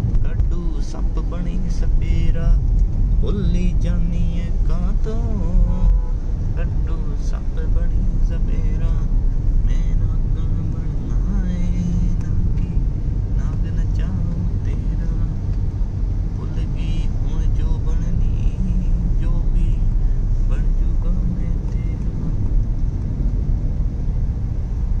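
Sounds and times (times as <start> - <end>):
road and engine rumble in car: 0.0 - 25.0
people talking: 0.2 - 2.6, 3.2 - 5.9, 6.6 - 9.0, 13.4 - 15.3.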